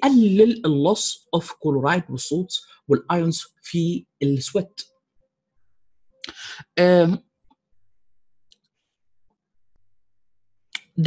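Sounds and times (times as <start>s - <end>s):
man speaking: 0.0s - 4.8s, 6.2s - 7.2s.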